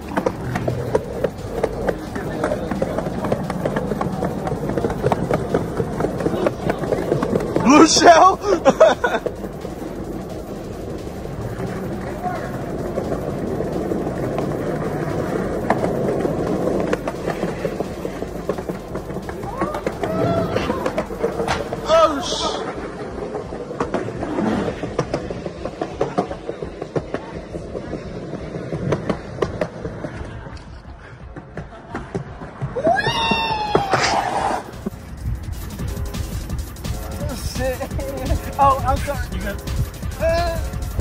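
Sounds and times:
skateboard wheels rolling on concrete: 0:00.0 - 0:41.0
people laughing and shouting: 0:00.4 - 0:14.3, 0:19.0 - 0:23.4, 0:30.0 - 0:34.7, 0:36.9 - 0:41.0.

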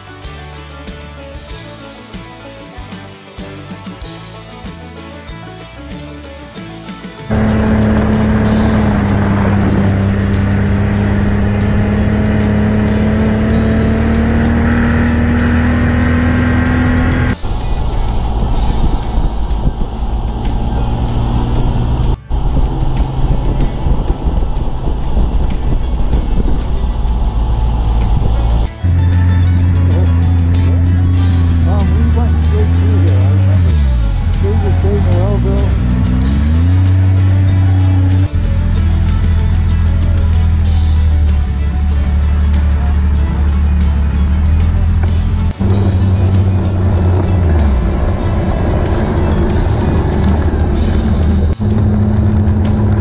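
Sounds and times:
snowmobile engine running: 0:07.3 - 0:53.0.

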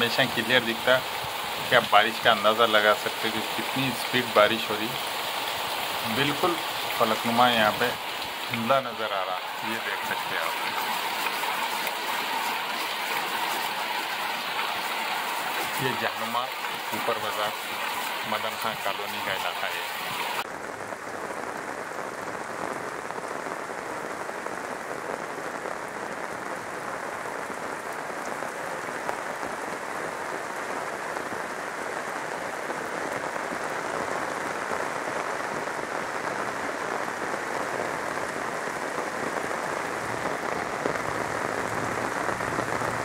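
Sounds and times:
heavy rain pouring: 0:00.0 - 0:43.0.

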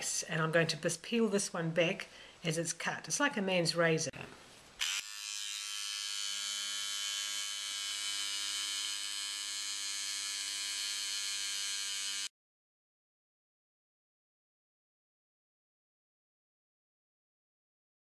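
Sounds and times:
electric seam ripper buzzing: 0:04.8 - 0:12.3.

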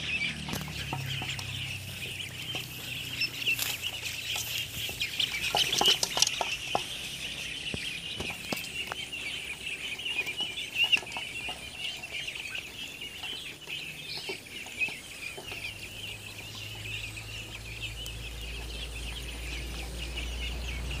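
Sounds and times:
ducklings peeping: 0:00.0 - 0:21.0.

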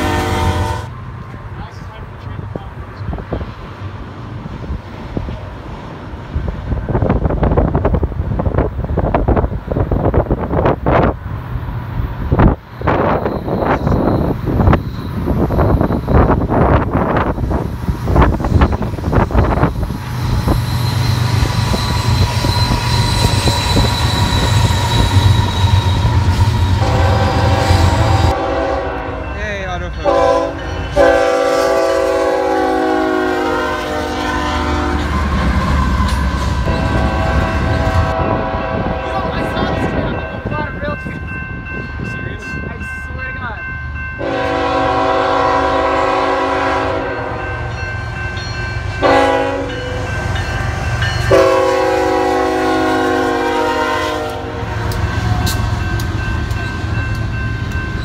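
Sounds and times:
locomotive air horn: 0:00.0 - 0:01.0, 0:21.4 - 0:29.3, 0:30.0 - 0:40.0, 0:44.2 - 0:47.6, 0:49.0 - 0:50.2, 0:51.3 - 0:55.5
diesel locomotives running: 0:00.0 - 0:58.0.

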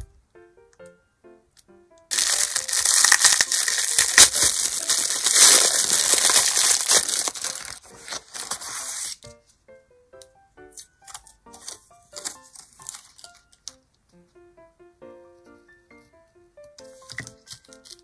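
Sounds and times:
cellophane wrapper crinkling: 0:02.1 - 0:09.2, 0:11.1 - 0:13.8.

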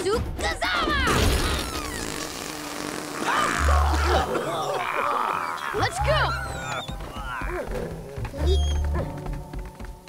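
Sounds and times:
cartoon gas burst: 0:01.2 - 0:04.3.

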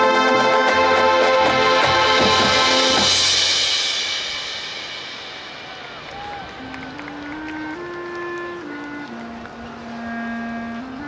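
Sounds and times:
sustained melody line: 0:00.0 - 0:05.2, 0:05.9 - 0:11.0
marching band chord with cymbal: 0:00.0 - 0:09.0
crowd noise: 0:00.0 - 0:11.0.

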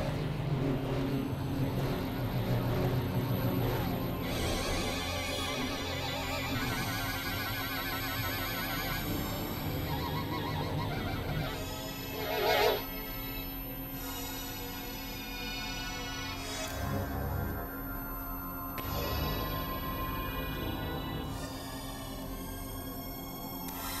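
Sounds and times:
low synthesizer drones: 0:00.0 - 0:24.0.

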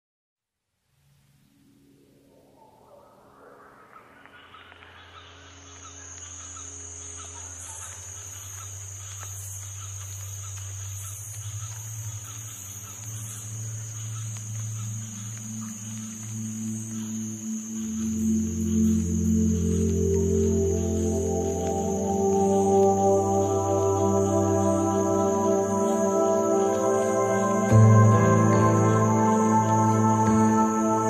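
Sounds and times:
low music drone: 0:01.8 - 0:31.0
high-pitched insect drone: 0:03.2 - 0:31.0
organ-like tones: 0:13.7 - 0:31.0.

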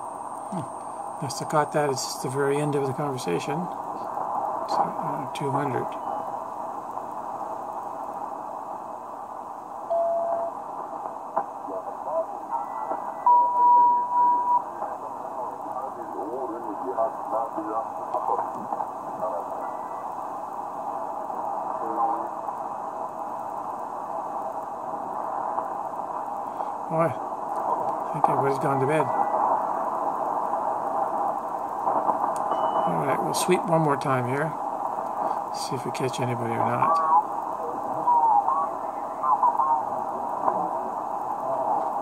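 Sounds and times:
radio static hiss: 0:00.0 - 0:42.0
garbled radio voices: 0:00.4 - 0:06.2, 0:11.4 - 0:13.2, 0:14.6 - 0:22.6, 0:26.4 - 0:42.0
radio tuning whistle: 0:11.7 - 0:18.4, 0:36.8 - 0:39.9.

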